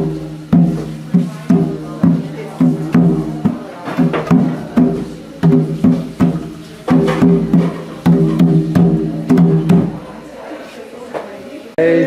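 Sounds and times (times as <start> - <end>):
wooden hand drum strokes: 0.0 - 10.2.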